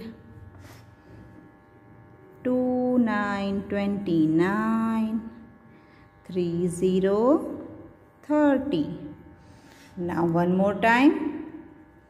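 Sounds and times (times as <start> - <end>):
buzzy electrical hum: 0.0 - 12.0.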